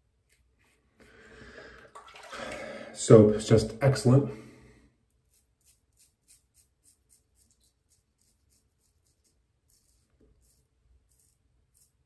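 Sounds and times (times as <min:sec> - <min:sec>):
razor scraping stubble: 0:05.2 - 0:12.0.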